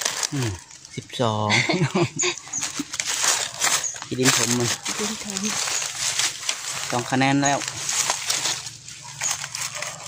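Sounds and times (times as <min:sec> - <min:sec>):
leaf litter rustling and crackling: 0:00.0 - 0:10.0.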